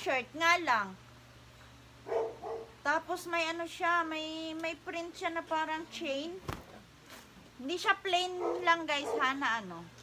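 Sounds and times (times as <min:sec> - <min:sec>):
dog barking: 0:02.0 - 0:02.8, 0:08.2 - 0:09.4.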